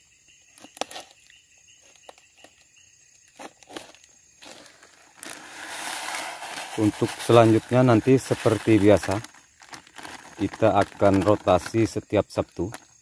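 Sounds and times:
fertilizer rustling from plastic bag: 3.4s - 12.8s.

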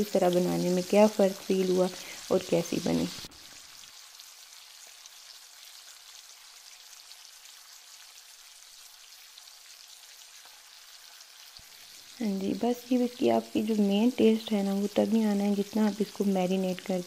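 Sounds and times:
fish deep-frying in oil: 0.0s - 17.0s.

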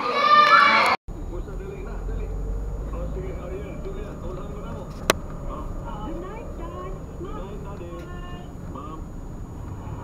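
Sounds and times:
vehicle rumble on road: 1.1s - 10.0s.

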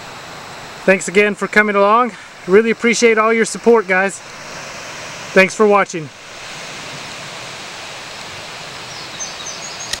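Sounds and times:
river rushing over rapids: 0.0s - 10.0s
faint bird chirping: 8.8s - 10.0s.

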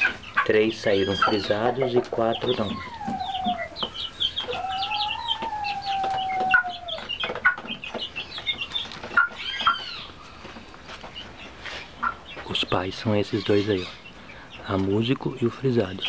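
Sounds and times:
chicks peeping: 0.0s - 16.0s
chicken crowing: 0.9s - 7.1s.

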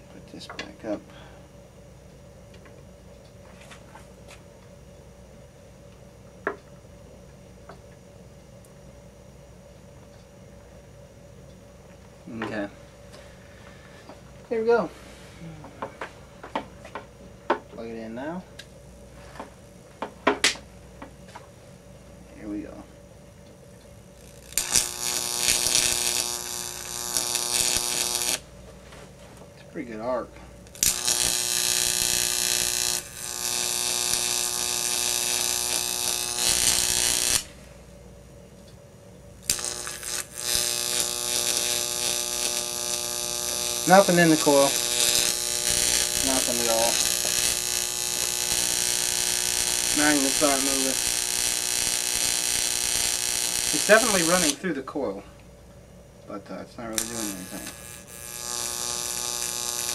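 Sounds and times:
electric arc buzzing: 0.0s - 38.6s, 39.2s - 55.5s, 56.4s - 59.9s
mains hum: 0.0s - 59.9s.

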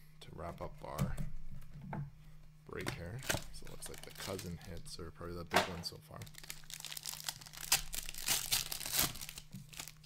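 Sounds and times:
plastic wrapper crinkling: 3.2s - 4.9s, 6.2s - 10.0s.

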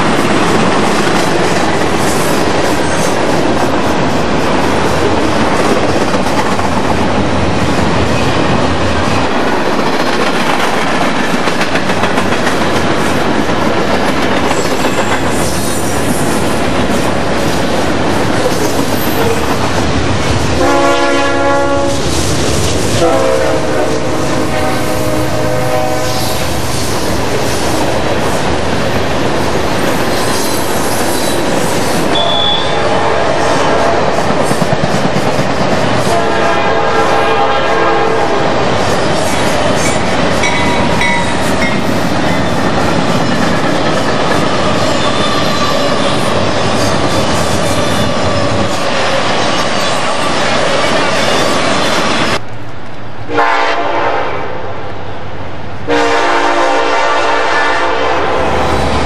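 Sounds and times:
freight train wheels rumbling: 0.0s - 59.0s
locomotive horn: 20.6s - 22.0s, 22.9s - 26.6s, 32.2s - 34.2s, 36.1s - 38.6s, 53.3s - 54.6s, 55.9s - 58.8s.

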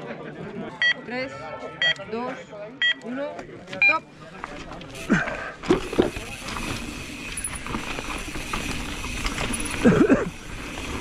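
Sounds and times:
bike tyres on dirt trail: 4.4s - 11.0s
bike knocks and rattles: 5.6s - 11.0s.

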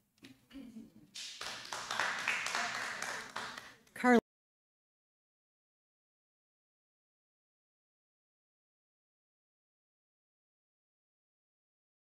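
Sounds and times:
audience applause: 1.2s - 3.8s.

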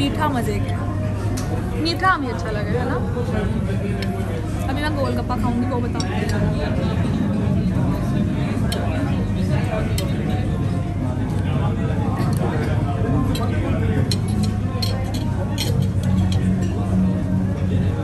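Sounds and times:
chatter of diners: 0.0s - 18.0s
cutlery and dishes clinking: 5.9s - 6.5s, 8.6s - 9.0s, 12.2s - 16.9s.

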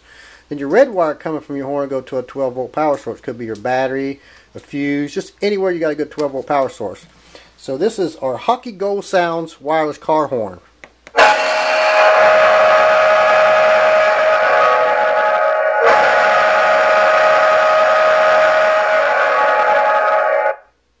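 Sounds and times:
deep horn blast: 11.2s - 20.6s.

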